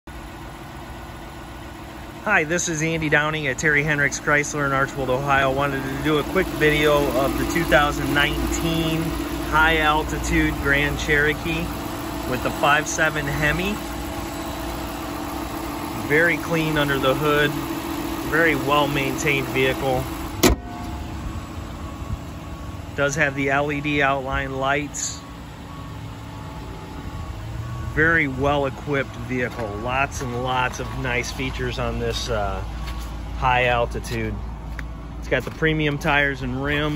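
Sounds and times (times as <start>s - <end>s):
car engine idling: 0.1s - 36.9s
car hood slamming shut: 20.4s - 21.0s.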